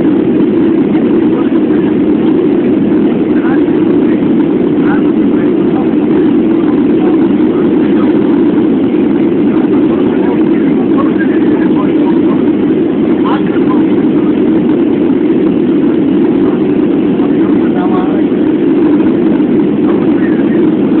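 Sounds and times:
airliner cabin engine rumble: 0.0 - 21.0
faint voices: 0.7 - 21.0.

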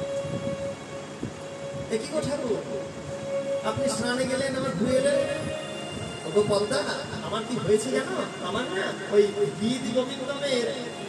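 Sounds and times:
harmonium holding a steady note: 0.0 - 11.0.

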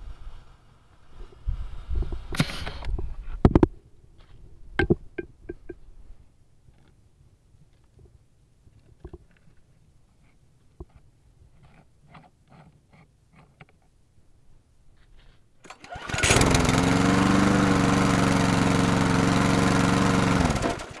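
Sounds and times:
small engine running: 15.7 - 21.0.

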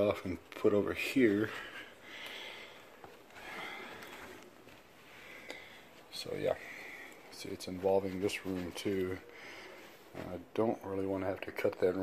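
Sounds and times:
footsteps shuffling on carpet: 0.2 - 10.8.

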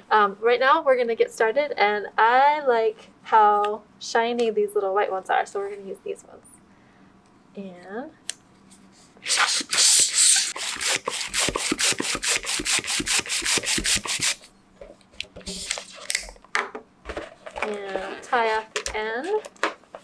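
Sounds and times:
hand balloon pump strokes: 9.2 - 14.5.

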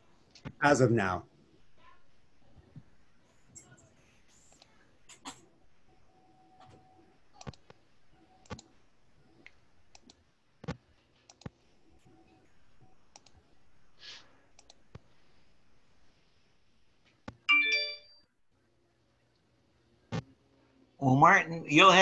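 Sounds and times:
faint keyboard or mouse clicks: 14.6 - 15.0
computer notification chime: 17.5 - 18.2.

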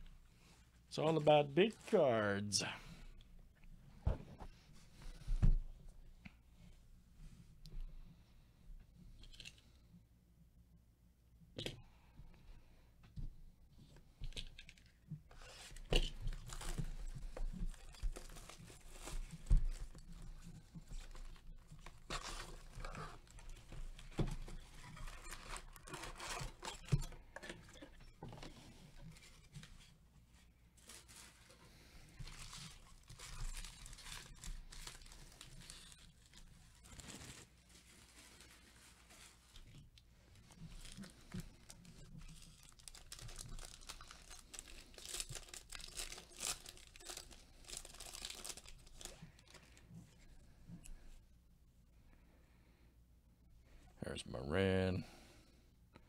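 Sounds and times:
foil wrapper crinkling and tearing: 14.4 - 28.2, 30.8 - 39.8, 40.4 - 49.9
card packs rustling: 14.6 - 30.0, 30.7 - 39.6, 40.3 - 49.9.

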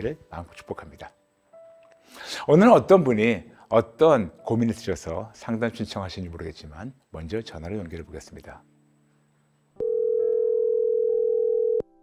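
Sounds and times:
telephone ringback tone: 9.8 - 11.9.

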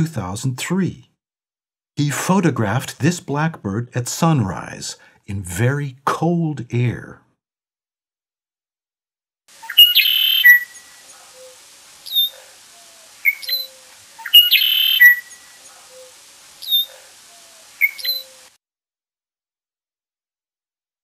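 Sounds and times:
short down-slurred bird calls: 9.5 - 18.6
blackbird song with buzzy trill: 9.6 - 18.5.

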